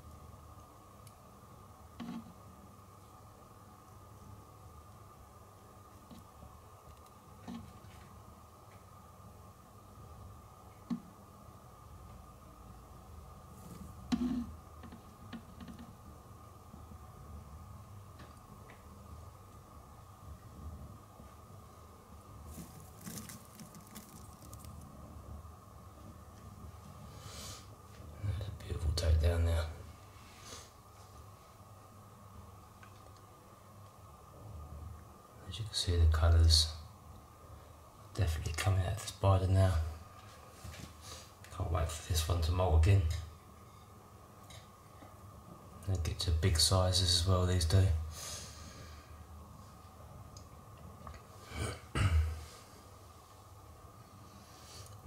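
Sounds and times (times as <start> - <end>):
faint high hum: 0.0 - 55.0
crackly clicks: 6.9 - 7.6.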